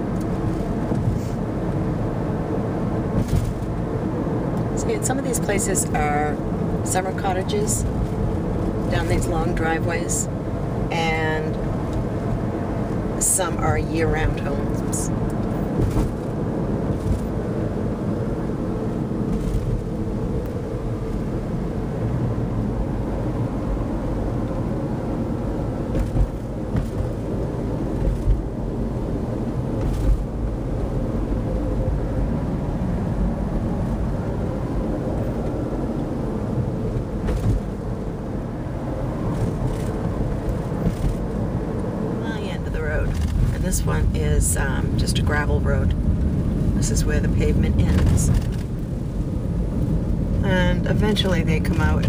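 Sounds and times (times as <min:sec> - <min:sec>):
road and engine rumble in car: 0:00.0 - 0:52.0.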